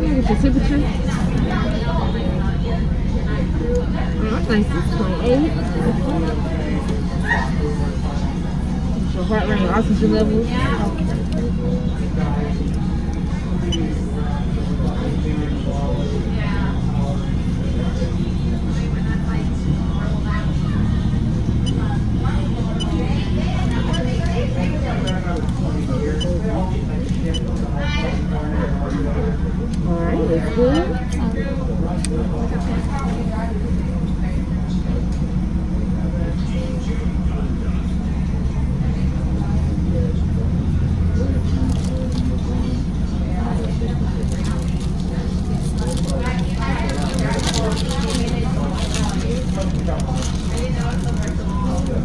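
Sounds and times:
faint voices: 0:00.0 - 0:52.0.

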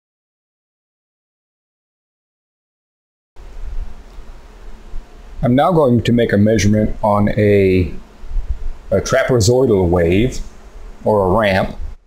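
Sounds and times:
faint hiss: 0:03.4 - 0:12.0
low electrical buzz: 0:03.4 - 0:12.0.

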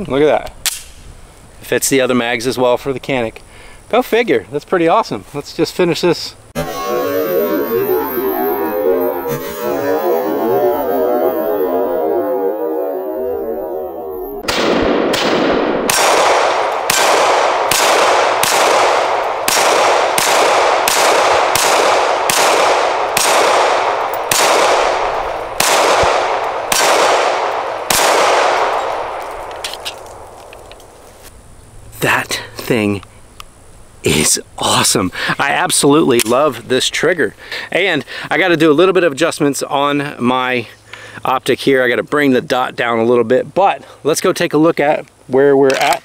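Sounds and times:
warbling sound: 0:06.6 - 0:15.0.

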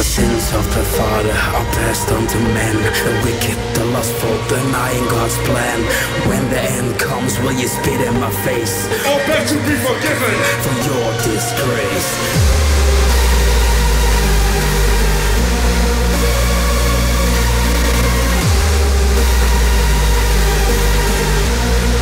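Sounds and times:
hardstyle electronic music: 0:00.0 - 0:22.0.

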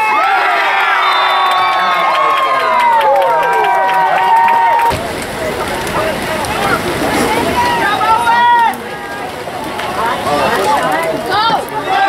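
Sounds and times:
crowd voices: 0:00.0 - 0:12.0
spectator yelling: 0:07.5 - 0:09.3.

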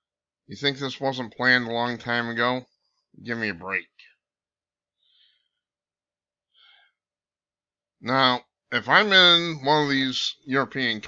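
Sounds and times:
faint breath in: 0:05.0 - 0:05.7, 0:06.5 - 0:07.1.

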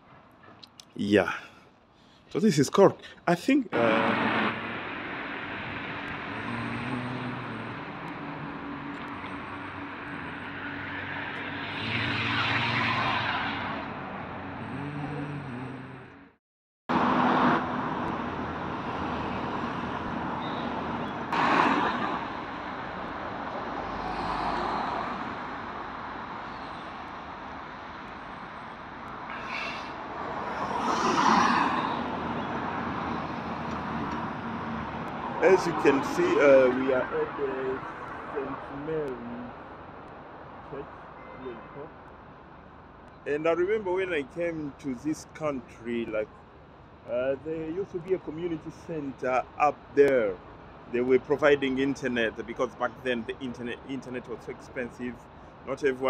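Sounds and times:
street traffic hum: 0:00.0 - 0:56.0
car engines passing: 0:03.7 - 0:56.0
vehicle passing close by: 0:03.8 - 0:16.2.

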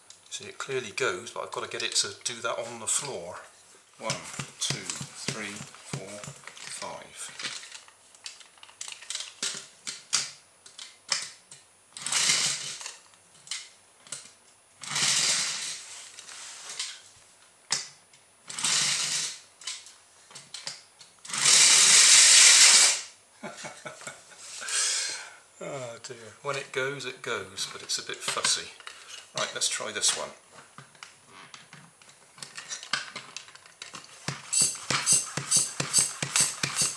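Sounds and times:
person talking: 0:00.3 - 0:07.4, 0:24.7 - 0:30.5
hand pump strokes: 0:04.0 - 0:06.8, 0:21.3 - 0:23.0, 0:34.3 - 0:36.9
toy air engine running: 0:21.3 - 0:23.1, 0:34.4 - 0:36.9.

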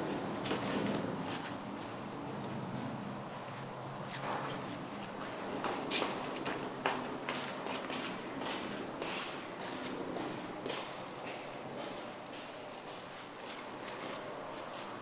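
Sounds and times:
footsteps on carpet: 0:12.9 - 0:15.0.

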